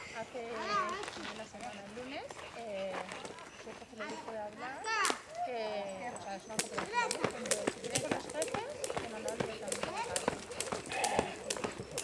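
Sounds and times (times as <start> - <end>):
indistinct voices chattering: 0.0 - 12.0
jump rope slapping gravel: 6.5 - 12.0.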